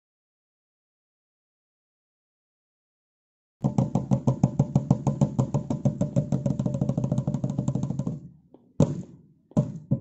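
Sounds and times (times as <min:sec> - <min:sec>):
drum beaten in fast strokes: 0:08.8 - 0:10.0.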